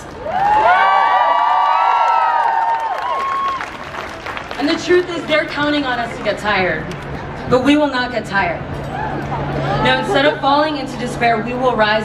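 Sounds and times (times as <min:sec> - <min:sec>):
crowd cheering and whooping: 0:00.1 - 0:04.2, 0:08.8 - 0:10.3.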